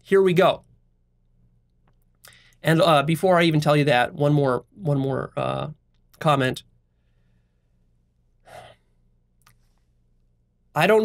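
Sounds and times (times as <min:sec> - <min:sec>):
man breathing: 0:02.2 - 0:02.6, 0:06.8 - 0:10.1.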